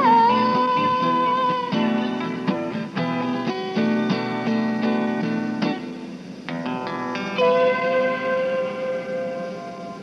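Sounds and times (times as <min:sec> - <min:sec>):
guitar chord ringing out: 0:00.0 - 0:05.9, 0:06.5 - 0:10.0.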